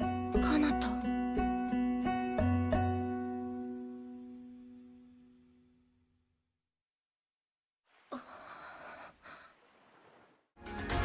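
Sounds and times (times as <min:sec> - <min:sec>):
girl breathing: 0:08.1 - 0:09.7.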